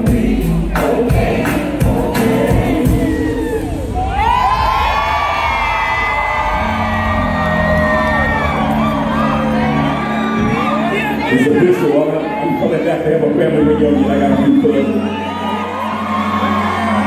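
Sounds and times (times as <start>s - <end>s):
crowd singing along: 0.0s - 4.8s
live band with drum beat: 0.0s - 5.0s
crowd cheering: 3.0s - 17.0s.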